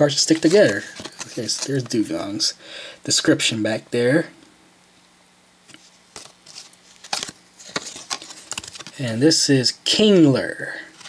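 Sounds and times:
trading cards shuffled: 0.1s - 2.2s, 5.7s - 9.2s.

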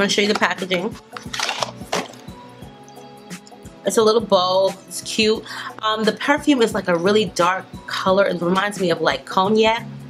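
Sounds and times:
background music with held notes: 0.0s - 10.0s
packaging rustling: 0.2s - 2.3s.

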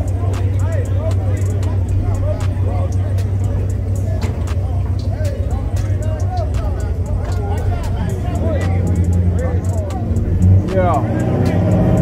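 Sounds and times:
crowd chatter: 0.0s - 12.0s
race car engines idling: 0.0s - 12.0s.

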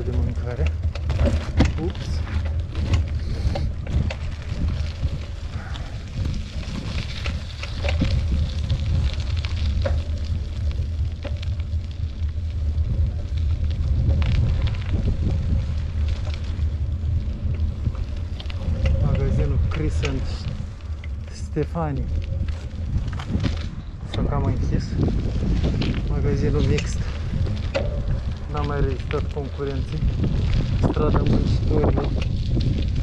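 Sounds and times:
bicycle knocks and rattles: 0.0s - 33.0s
wind buffeting microphone: 0.0s - 33.0s.

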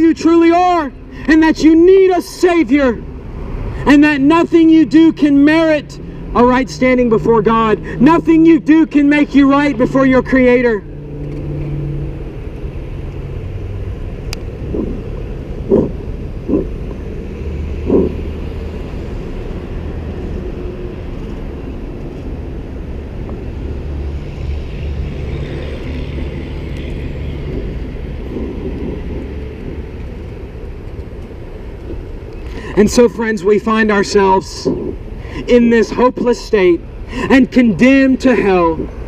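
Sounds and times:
motor vehicles running: 0.0s - 39.0s
road noise: 0.0s - 39.0s.

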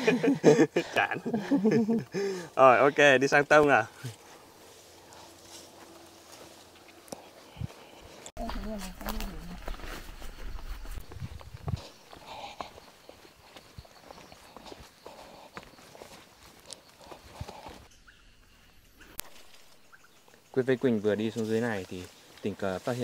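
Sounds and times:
footsteps on dirt path: 1.3s - 17.9s
steps brushing leaves: 3.4s - 17.9s, 21.0s - 23.0s.

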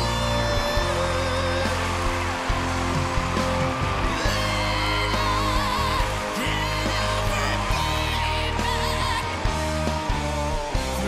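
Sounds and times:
rock power ballad: 0.0s - 11.0s.

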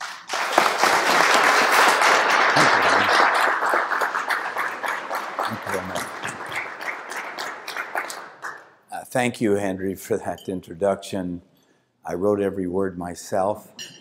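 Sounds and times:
audience applauding: 0.0s - 8.7s.

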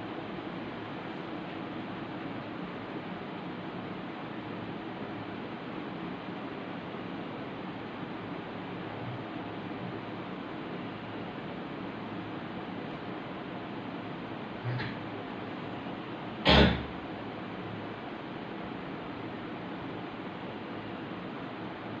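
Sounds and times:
steady background hiss: 0.0s - 22.0s.

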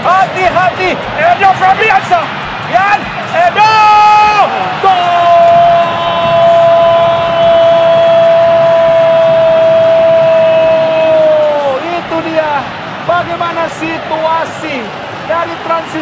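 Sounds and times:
commentator's long goal shout: 0.0s - 16.0s
stadium crowd noise: 0.0s - 16.0s.

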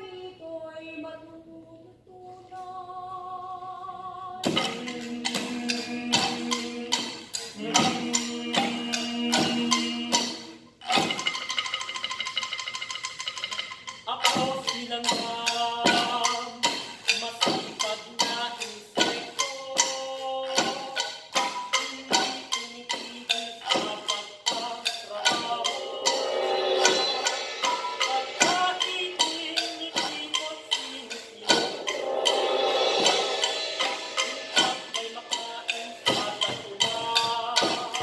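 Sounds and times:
percussion ensemble playing: 4.4s - 38.0s
fast drum roll: 25.3s - 38.0s.

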